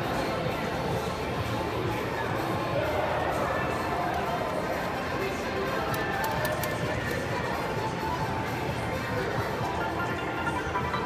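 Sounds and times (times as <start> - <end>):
casino background chatter: 0.0 - 11.0
slot machine music and reel sounds: 5.5 - 11.0.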